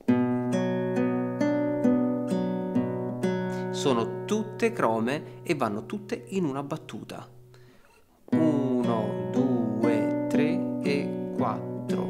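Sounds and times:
classical guitar fingerpicking: 0.0 - 12.0.

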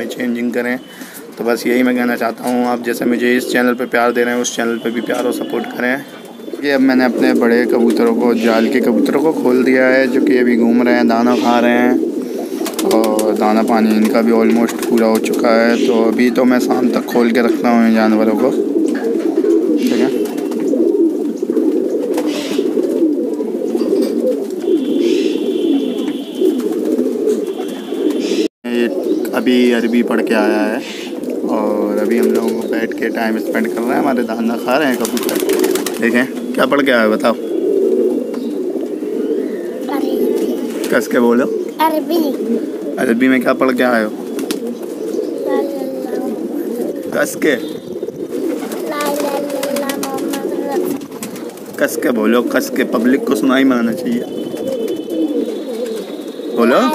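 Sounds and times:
pigeons cooing: 0.0 - 56.9.

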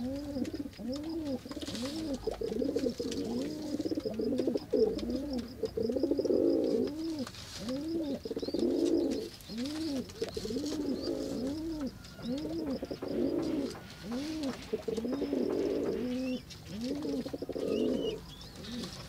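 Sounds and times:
dove cooing: 0.0 - 19.0
small birds chirping: 0.0 - 19.0.

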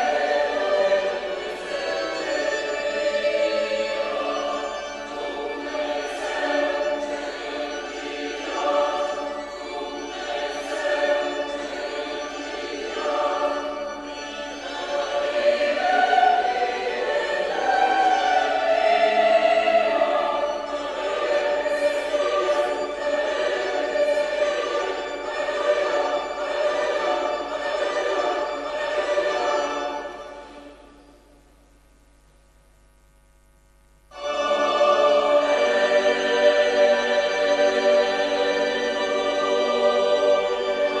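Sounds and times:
choir singing a hymn: 0.0 - 31.1, 34.1 - 41.0.

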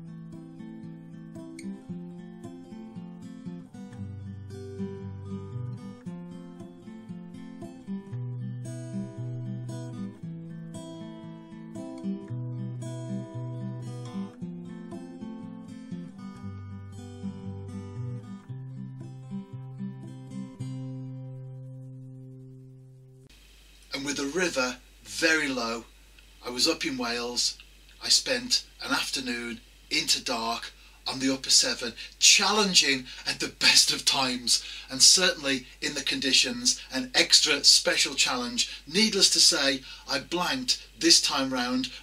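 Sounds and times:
acoustic guitar music: 0.0 - 23.3, 28.0 - 42.0.

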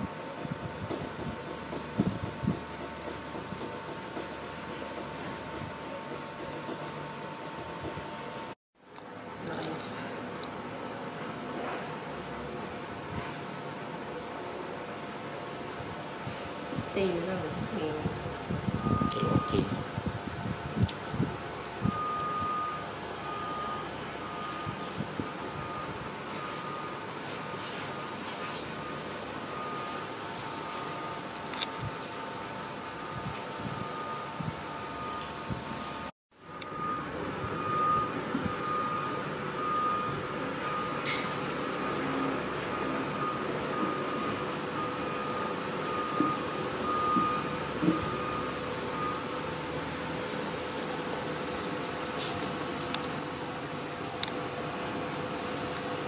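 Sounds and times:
steady background noise: 0.0 - 56.0
electronic beeps: 18.7 - 19.8.

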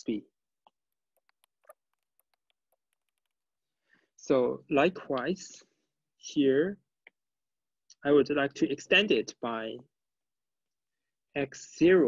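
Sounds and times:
stylus tapping on tablet screen: 0.6 - 3.5.

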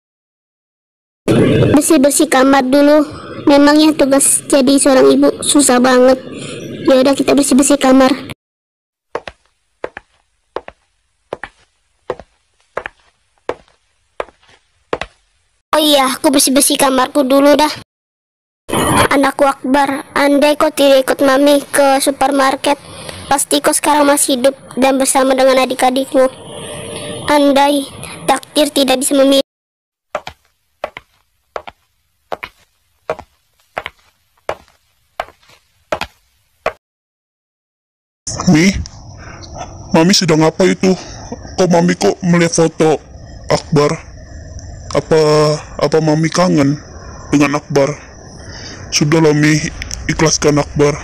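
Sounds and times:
light footsteps walking: 9.1 - 15.4, 30.1 - 36.8.

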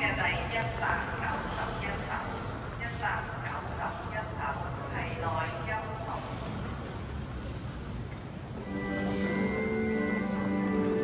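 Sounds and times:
church music with held notes: 8.6 - 11.0.

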